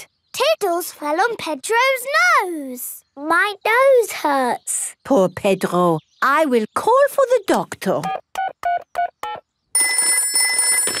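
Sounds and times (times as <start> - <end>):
telephone ringing: 8.7 - 11.0.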